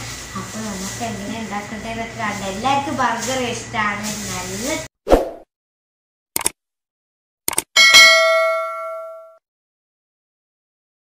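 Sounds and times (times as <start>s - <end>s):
quick clicks: 6.4s - 6.6s, 7.5s - 7.7s
bright bell ding: 7.8s - 9.4s.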